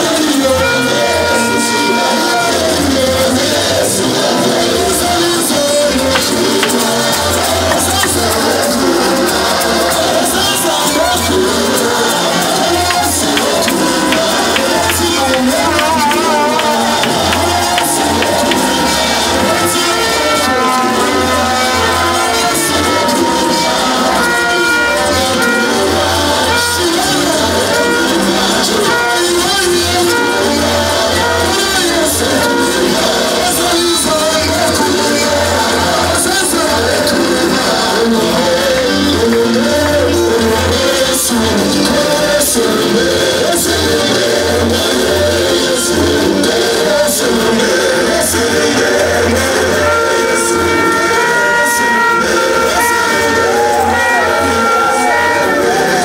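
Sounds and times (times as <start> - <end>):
band playing: 0.0 - 56.0
bass: 0.0 - 56.0
person singing: 0.0 - 56.0.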